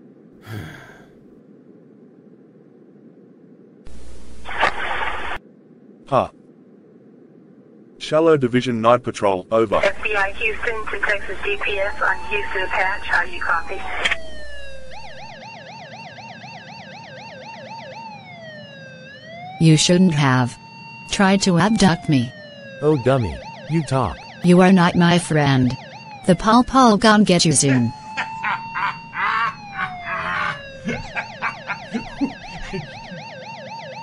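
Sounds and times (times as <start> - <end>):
man sighing: 0.4 - 1.2, 29.2 - 31.3, 32.0 - 33.0
faint steady hiss: 1.0 - 13.5
police car siren wailing and yelping: 11.4 - 34.0.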